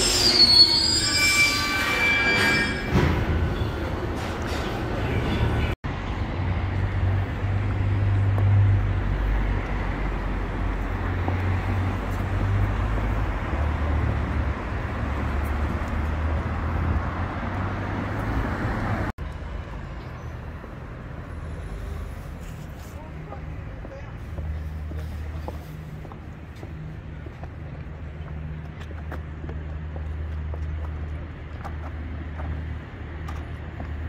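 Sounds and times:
passing cars rumbling: 2.9 - 34.0.

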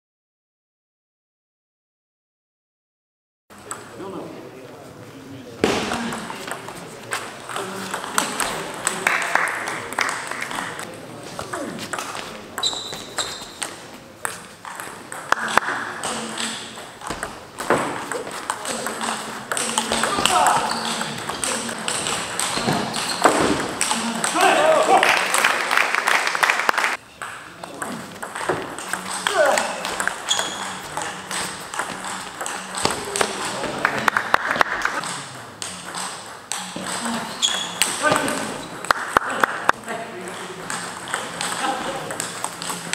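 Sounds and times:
table tennis ball clicking: 11.9 - 24.4, 27.2 - 42.9
voices calling out: 18.1 - 25.4.

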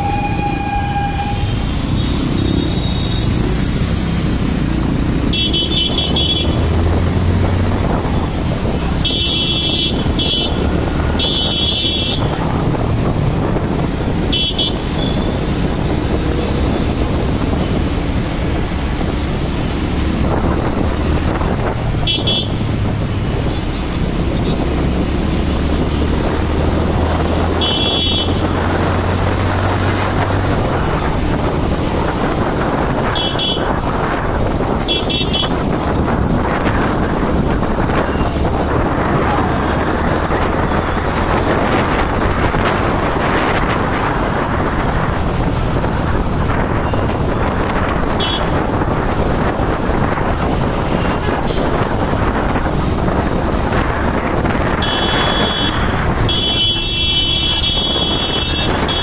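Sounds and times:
vehicle horn toots: 0.0 - 3.3, 5.3 - 6.6, 9.0 - 12.4, 14.3 - 15.4, 22.0 - 22.6, 27.5 - 28.5, 33.0 - 33.8, 34.8 - 35.6, 48.1 - 48.6, 54.8 - 59.0
wind and road noise: 0.0 - 59.0.

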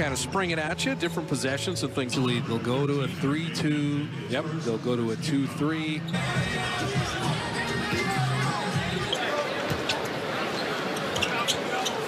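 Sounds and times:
music over loudspeakers: 0.0 - 9.3
crowd murmuring: 6.2 - 12.0.

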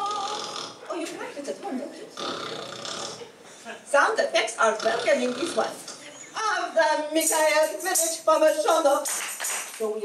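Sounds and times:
guttural belch-like vocal noise: 2.2 - 3.3, 4.7 - 5.8.

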